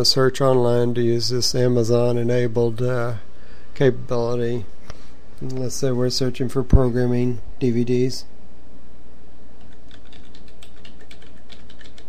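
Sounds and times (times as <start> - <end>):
steady low hum: 0.0 - 12.0
typing on computer keyboard: 9.6 - 12.0.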